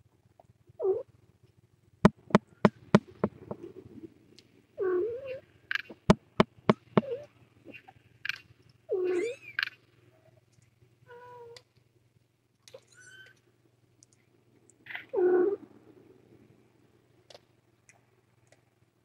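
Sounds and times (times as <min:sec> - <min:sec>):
faint low hum: 0:00.0 - 0:19.0
cats meowing: 0:04.8 - 0:05.4, 0:08.9 - 0:09.7.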